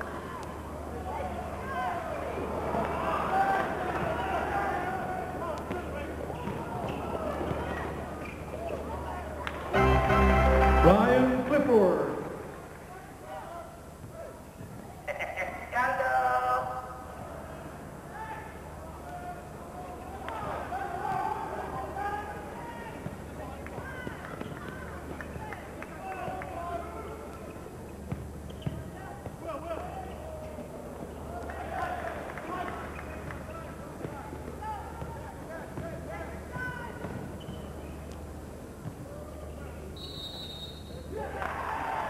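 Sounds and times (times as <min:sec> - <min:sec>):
crowd and player voices chattering: 0:00.0 - 0:15.8, 0:16.4 - 0:41.8.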